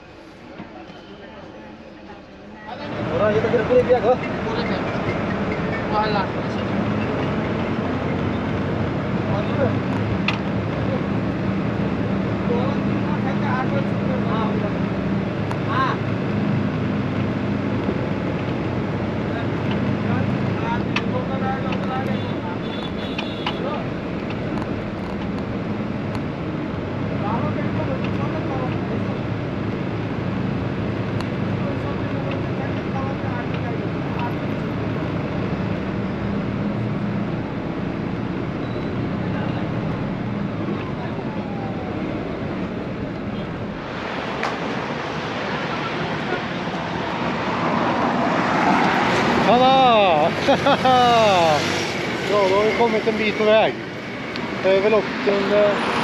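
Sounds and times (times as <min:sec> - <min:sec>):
road noise: 0:00.0 - 0:56.0
bus engine drone: 0:01.6 - 0:56.0.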